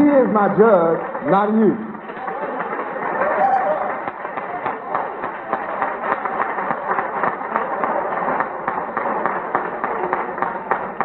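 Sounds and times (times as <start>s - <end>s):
audience applauding: 2.0s - 11.0s.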